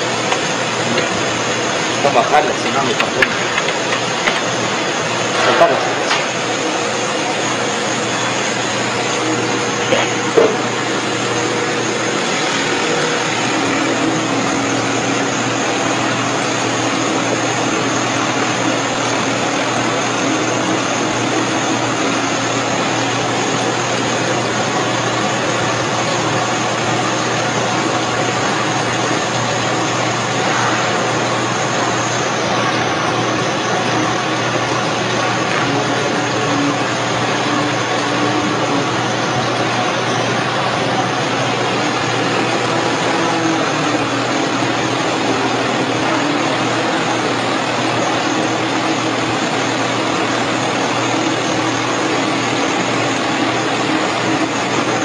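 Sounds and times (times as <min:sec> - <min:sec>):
machine humming: 0:00.0 - 0:55.0.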